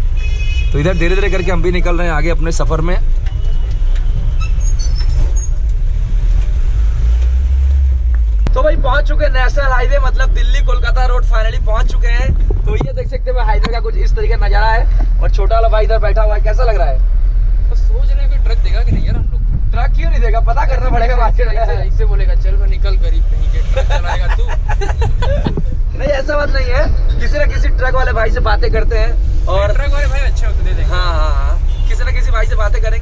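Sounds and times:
engine and road noise in cab: 0:00.0 - 0:33.0.

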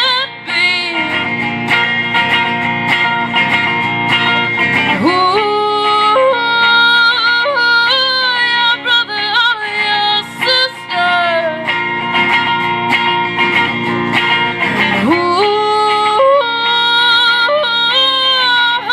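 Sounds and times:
woman singing: 0:00.0 - 0:01.9, 0:04.5 - 0:12.1, 0:14.7 - 0:18.9
strummed electric guitar: 0:00.0 - 0:18.9.

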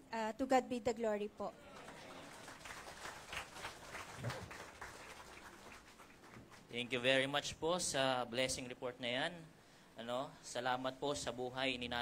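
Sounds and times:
faint applause: 0:01.6 - 0:06.7.

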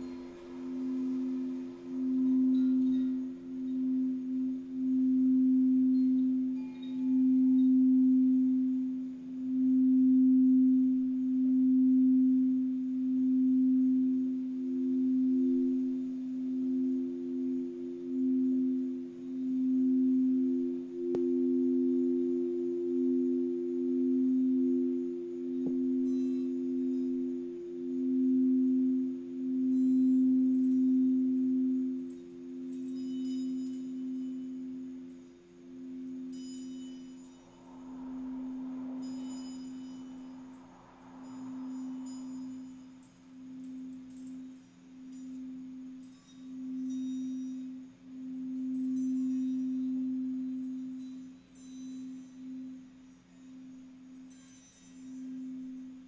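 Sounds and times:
faint high tinkles: 0:00.0 - 0:56.0
singing bowls deep tones: 0:00.0 - 0:56.0.

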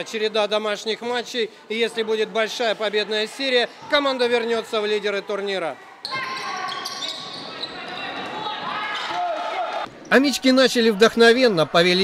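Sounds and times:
voices in sports hall: 0:00.0 - 0:12.0.

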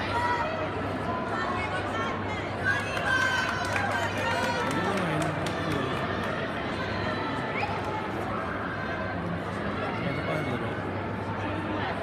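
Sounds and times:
crowd chatter echoing: 0:00.0 - 0:12.0.

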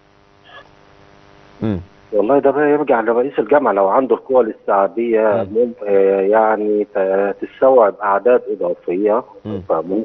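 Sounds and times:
faint steady hum: 0:00.0 - 0:10.0
man saying mm: 0:01.6 - 0:01.9, 0:05.3 - 0:05.6, 0:09.4 - 0:10.0.

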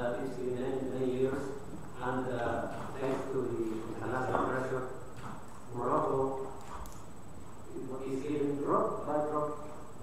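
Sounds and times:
man talking: 0:00.0 - 0:05.0, 0:05.7 - 0:06.6, 0:07.7 - 0:09.8.

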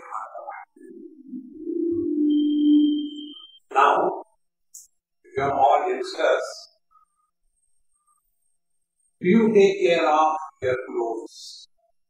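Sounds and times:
low steady tone: 0:00.8 - 0:03.6
high whistling tone: 0:01.3 - 0:03.7.

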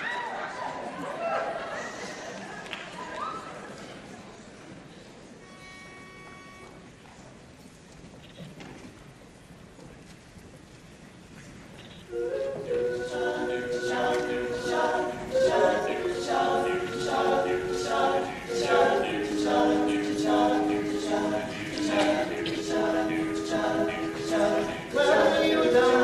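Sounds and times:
male a cappella group singing: 0:12.4 - 0:26.0.

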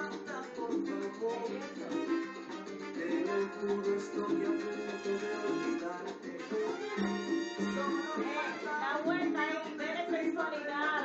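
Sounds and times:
salsa music: 0:00.0 - 0:11.0.

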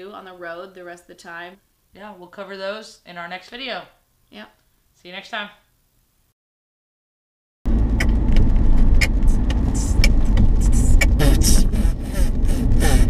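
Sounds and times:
car rumble inside cabin: 0:07.7 - 0:13.0.

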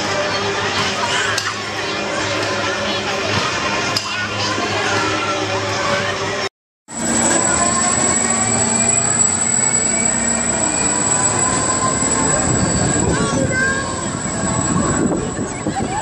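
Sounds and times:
constant high whine: 0:00.0 - 0:16.0
thrill ride mechanical rumble: 0:00.0 - 0:16.0
sliding squealing tones: 0:06.9 - 0:16.0.

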